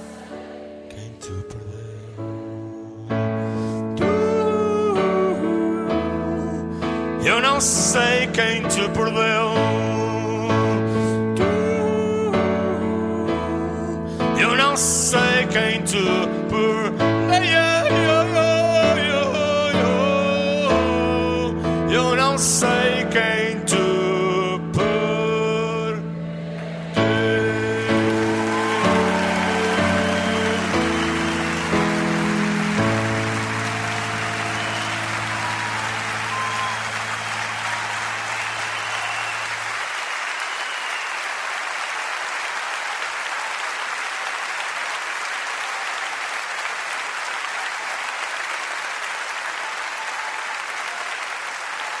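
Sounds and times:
live band final chords: 26.0s - 39.7s
audience applause: 26.4s - 52.0s.

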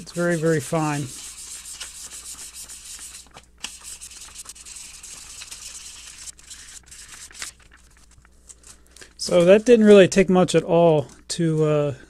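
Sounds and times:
sandpaper rubbing on plastic: 0.0s - 8.2s.

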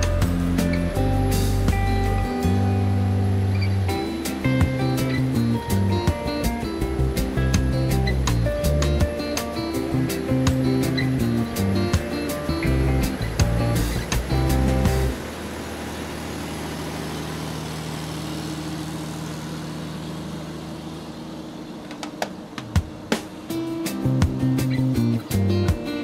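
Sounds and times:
background music with beat: 0.0s - 15.3s, 21.8s - 26.0s
vehicle road noise: 0.0s - 26.0s.

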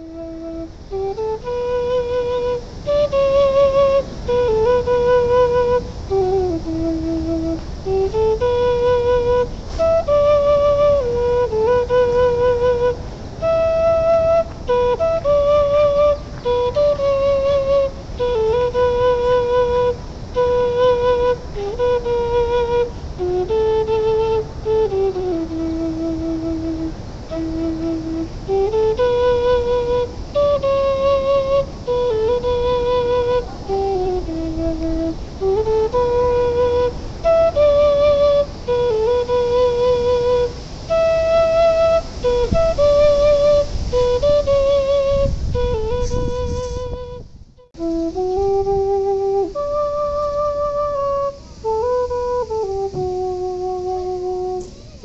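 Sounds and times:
low flute slow melody: 0.0s - 55.0s.

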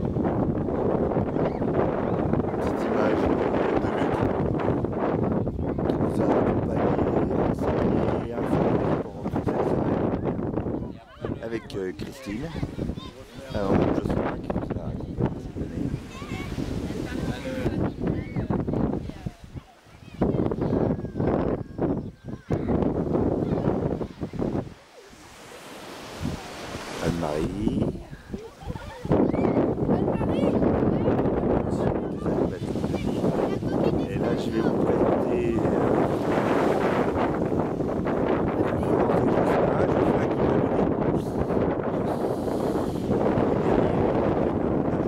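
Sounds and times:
surf breaking on a beach: 0.0s - 45.0s
wind buffeting the microphone: 0.0s - 45.0s.

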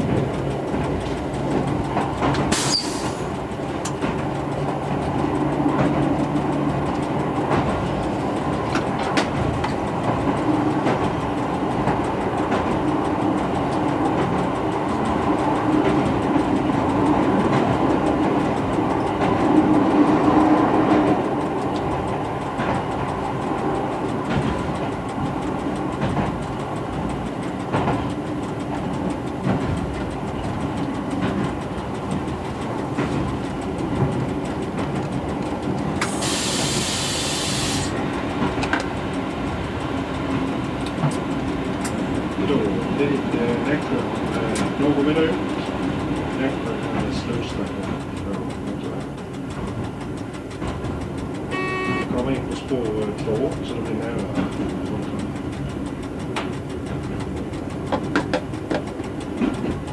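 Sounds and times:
diesel railcar engine: 0.0s - 59.9s
wheels clicking over rails: 0.0s - 59.9s
burst of hiss: 36.0s - 37.9s.

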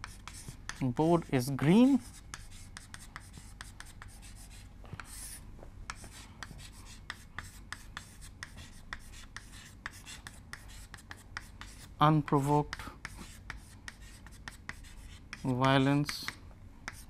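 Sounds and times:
chalk scraping on chalkboard: 0.0s - 17.0s
chalk tapping and scratching: 0.0s - 17.0s.

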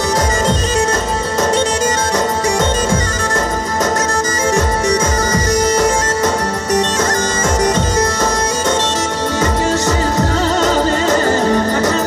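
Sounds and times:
reedy wind instrument melody: 0.0s - 12.0s
deep drumbeats: 7.5s - 8.5s.

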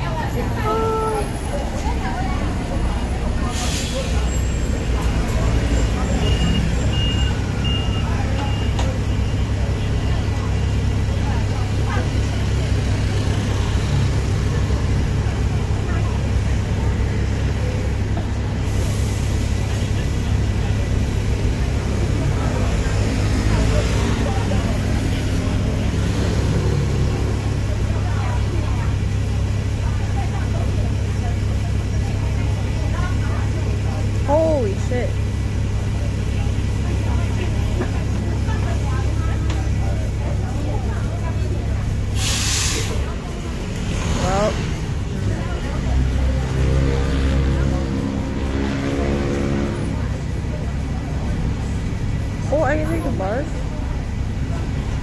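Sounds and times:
street traffic rumble: 0.0s - 55.0s.

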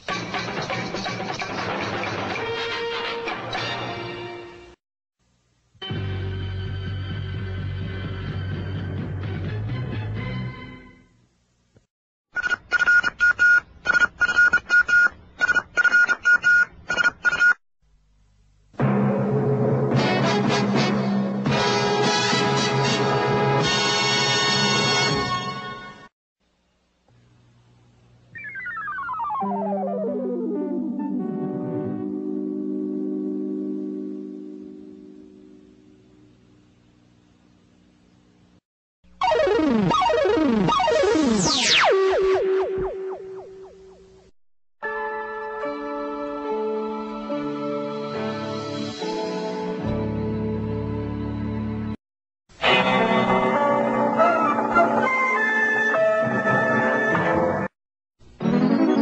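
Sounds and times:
falling pitch sweeps: 28.3s - 31.3s
distorted jingle music: 28.4s - 32.4s, 39.2s - 44.0s, 58.4s - 59.0s.

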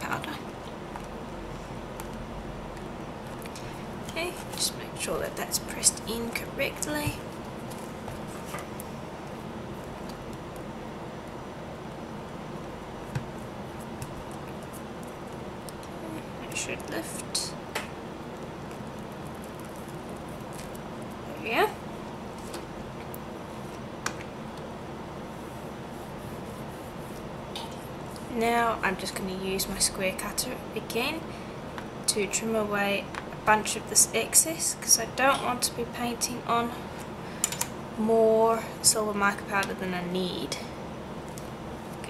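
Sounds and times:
air conditioner whirring: 0.0s - 42.0s.

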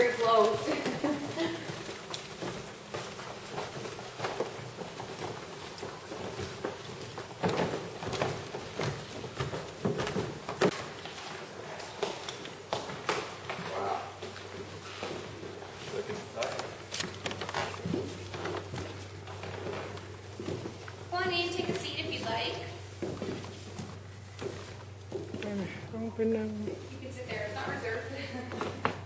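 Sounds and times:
footsteps on carpeted stairs: 0.0s - 13.4s.

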